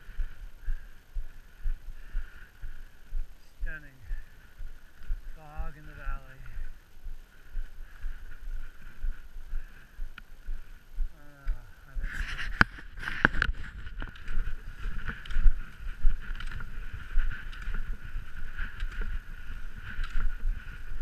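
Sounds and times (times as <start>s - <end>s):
wind rumbling on microphone: 0.0s - 21.0s
ski poles clicking: 12.1s - 21.0s.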